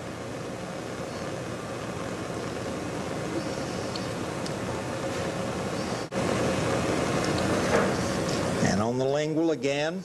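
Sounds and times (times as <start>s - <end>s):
faint steady tone: 0.0s - 7.0s
low hum: 0.0s - 9.0s
steady hiss: 0.0s - 10.0s.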